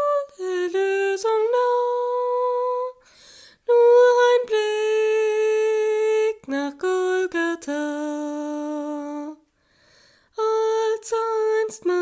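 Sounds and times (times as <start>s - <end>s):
woman singing a hymn unaccompanied: 0.0s - 3.0s, 3.6s - 9.5s, 10.4s - 12.0s.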